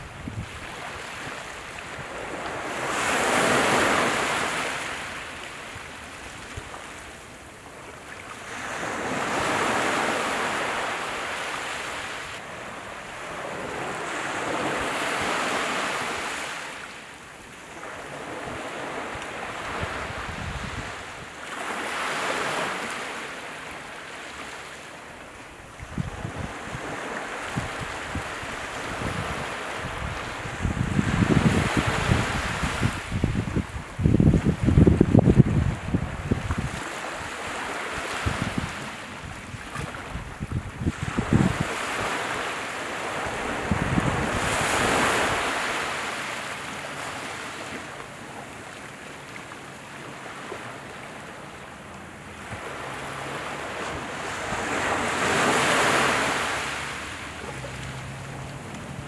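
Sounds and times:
wind buffeting microphone: 0.0s - 2.5s, 19.6s - 21.3s, 25.8s - 36.8s, 37.9s - 42.2s, 43.2s - 45.6s
small waves washing on shore: 0.0s - 59.0s.

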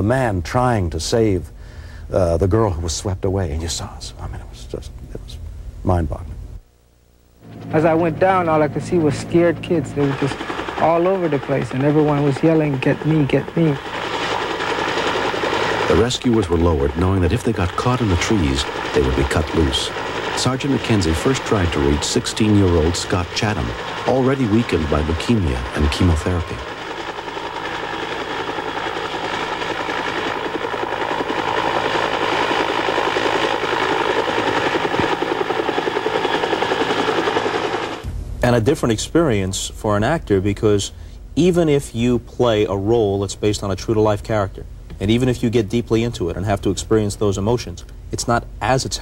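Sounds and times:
helicopter rotor hovering: 7.4s - 38.2s.

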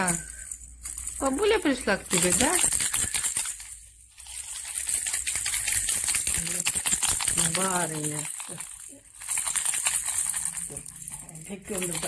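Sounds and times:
plastic baby rattle shaking: 0.0s - 12.0s.

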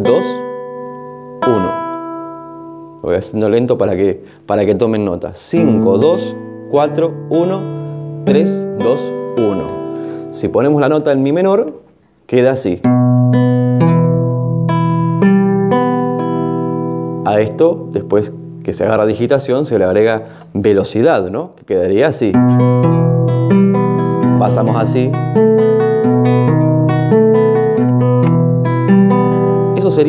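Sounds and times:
classical guitar plucking: 0.0s - 12.0s, 12.8s - 20.6s, 22.2s - 30.0s.

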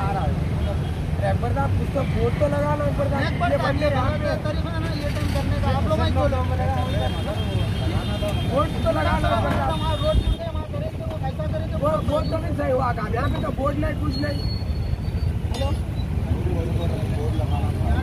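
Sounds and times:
men talking: 0.0s - 18.0s
road traffic rumble: 0.0s - 18.0s.

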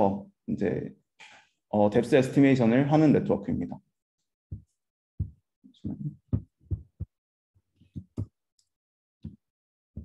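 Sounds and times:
soft dull thumps: 4.5s - 7.1s.

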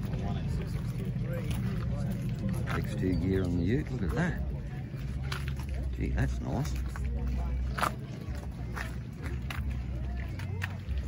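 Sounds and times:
people talking: 0.0s - 11.0s
steady low hum: 0.0s - 11.0s.

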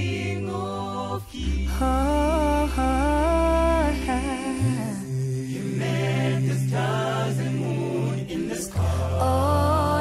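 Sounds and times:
male a cappella group singing: 0.0s - 10.0s.

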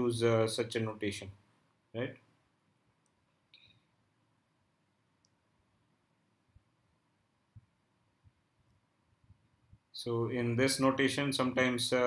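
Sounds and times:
faint clicks: 2.6s - 3.9s, 5.2s - 5.4s.

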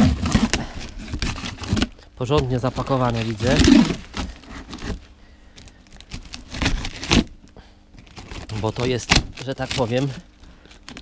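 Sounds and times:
cardboard box being torn open: 0.0s - 5.0s, 6.0s - 7.4s, 8.1s - 10.2s
tape and film crinkling: 0.0s - 11.0s.

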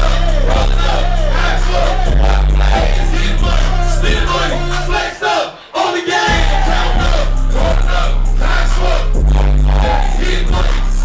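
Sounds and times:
heavy bass-driven beat: 0.0s - 5.1s, 6.2s - 11.0s
person rapping: 0.0s - 11.0s.

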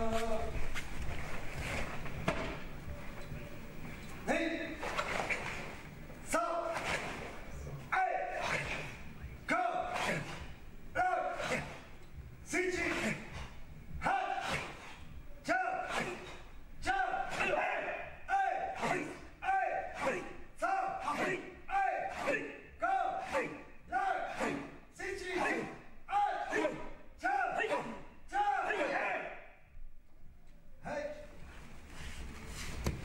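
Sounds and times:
people shouting in rhythm: 7.9s - 11.9s, 14.0s - 29.5s.

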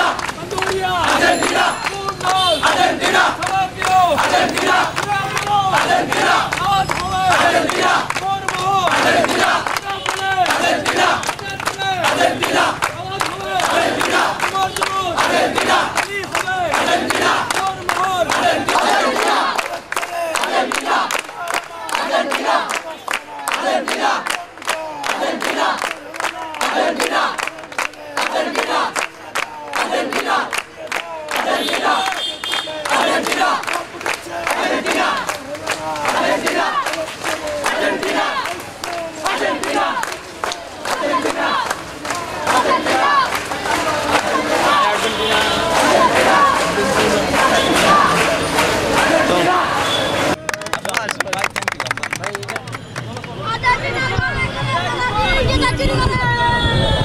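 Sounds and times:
crowd chanting and shouting: 0.0s - 51.1s, 52.3s - 57.0s
young men cheering: 0.0s - 51.4s
hands clapping: 0.0s - 53.5s.

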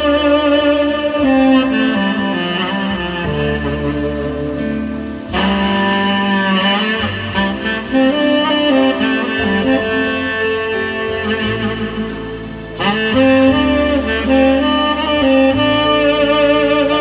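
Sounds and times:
accompaniment music with bass line: 0.0s - 17.0s
saxophone slow melody: 0.0s - 17.0s.

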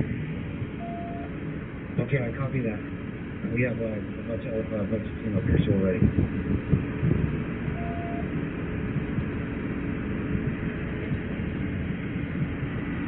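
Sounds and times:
vehicles idling: 0.0s - 13.0s
faint tone: 0.8s - 1.3s, 7.7s - 8.3s.

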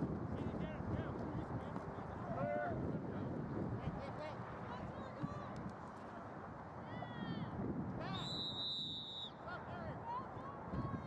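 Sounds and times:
referee whistle blast: 8.1s - 9.4s.

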